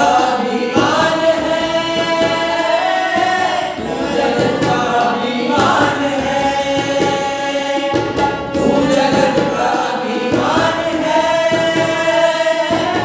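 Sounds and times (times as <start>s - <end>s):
men singing together: 0.0s - 13.0s
tabla drumming: 0.0s - 13.0s.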